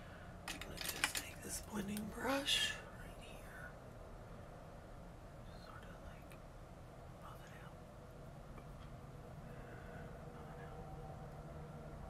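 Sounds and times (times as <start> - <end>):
low hum: 0.0 - 12.0
faint whispering: 0.5 - 3.8, 5.4 - 6.4, 7.2 - 7.9, 9.4 - 11.2.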